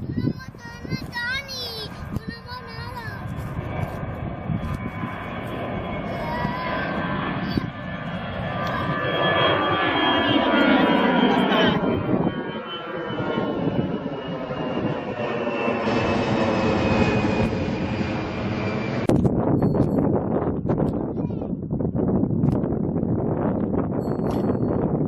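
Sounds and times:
jet airliners climbing overhead: 0.0 - 25.0.

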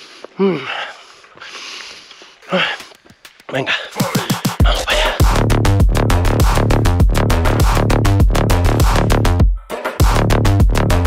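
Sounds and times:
heavy breathing: 0.0 - 5.4
person grunting: 3.6 - 5.4.

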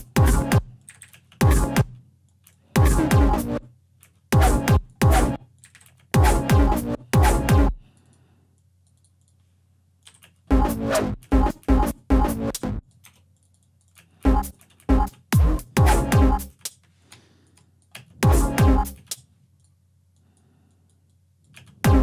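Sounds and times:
heavy bass stabs: 2.8 - 3.6, 4.4 - 5.4, 6.2 - 7.8, 15.4 - 16.5, 18.2 - 19.0.

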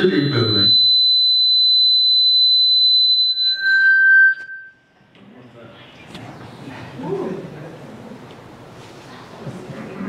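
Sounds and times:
microphone feedback squeal: 0.0 - 4.8.

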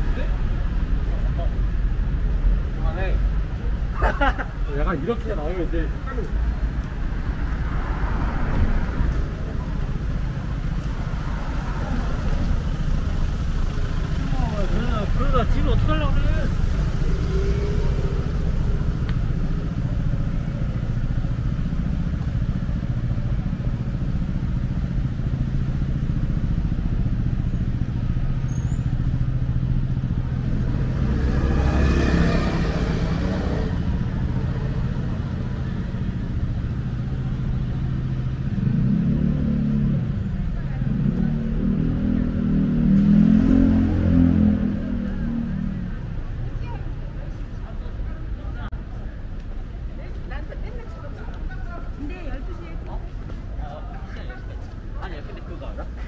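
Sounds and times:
road traffic rumble: 0.0 - 56.0
vehicle passing close: 29.9 - 35.9.

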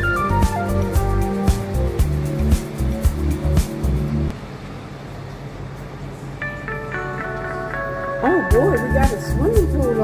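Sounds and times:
music with heavy bass: 0.0 - 4.3, 8.5 - 10.0.

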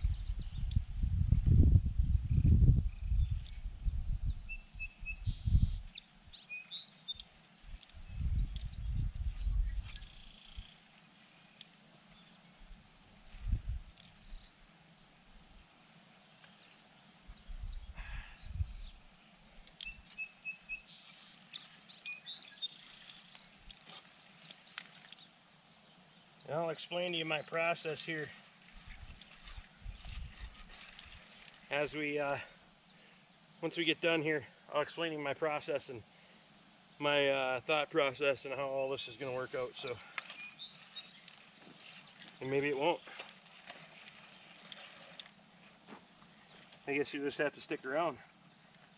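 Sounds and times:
birds chirping: 1.8 - 12.8, 13.6 - 15.2, 16.2 - 48.9
push seeder rolling through dirt: 27.7 - 31.8, 39.7 - 47.1.

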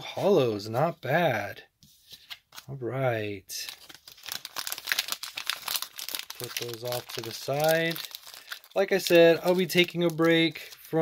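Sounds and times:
foil wrapper crinkling: 3.6 - 11.0.

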